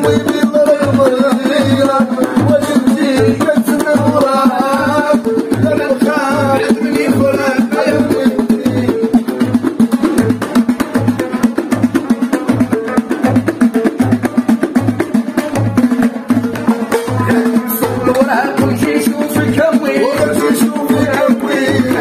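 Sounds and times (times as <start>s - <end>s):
singing: 0.0s - 9.3s, 17.1s - 22.0s
frame drums beating: 0.0s - 22.0s
plucked lute: 0.0s - 22.0s
small clay hand drum: 0.0s - 22.0s.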